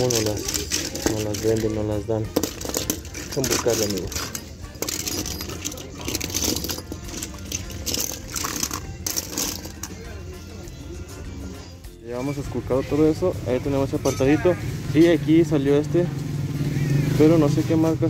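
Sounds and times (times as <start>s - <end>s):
toy cars clattering: 0.0s - 10.1s
music: 0.0s - 18.0s.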